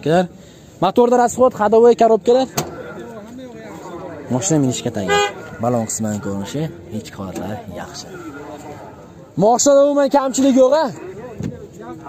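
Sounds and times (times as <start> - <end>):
people talking: 0.0 - 12.0
car horn toot: 5.0 - 5.6.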